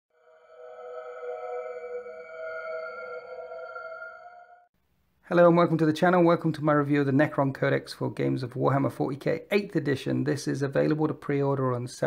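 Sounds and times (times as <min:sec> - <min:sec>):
held electronic chord: 0:00.3 - 0:04.6.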